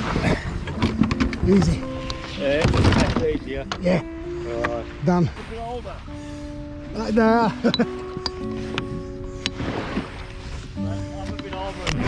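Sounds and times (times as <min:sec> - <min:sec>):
plastic kayak knocks and thuds: 0:00.0 - 0:03.5
music: 0:00.0 - 0:12.0.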